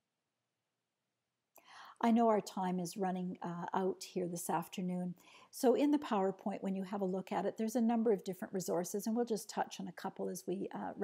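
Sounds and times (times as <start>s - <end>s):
faint breath drawn in: 1.6s - 2.0s, 5.2s - 5.6s
person speaking: 2.0s - 11.0s.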